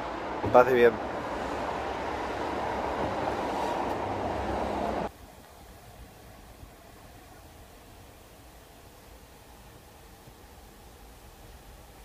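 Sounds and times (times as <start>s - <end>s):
city street traffic rushing: 0.0s - 5.1s.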